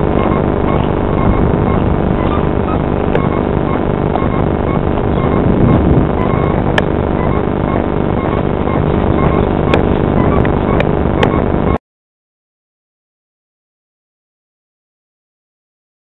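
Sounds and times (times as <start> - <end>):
airliner engine noise: 0.0 - 11.8
wind buffeting microphone: 0.0 - 11.8
sharp clicks: 6.2 - 11.4.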